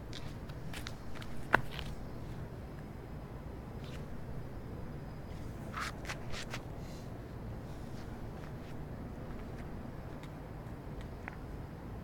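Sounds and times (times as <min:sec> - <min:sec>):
steady low outdoor rumble: 0:00.0 - 0:12.0.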